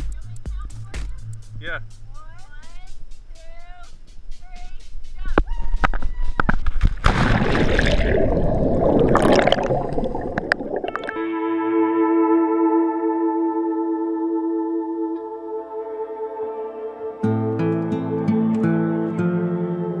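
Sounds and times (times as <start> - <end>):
churning underwater bubbles: 6.8 - 11.2
loud splash into water: 6.8 - 11.2
ambient music with held notes: 11.0 - 20.0.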